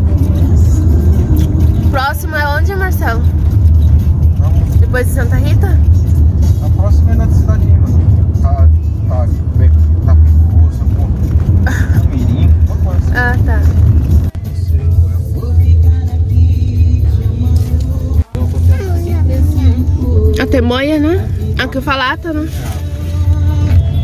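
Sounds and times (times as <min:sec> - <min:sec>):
music with singing: 0:00.0 - 0:24.0
road and engine rumble in car: 0:00.0 - 0:24.0.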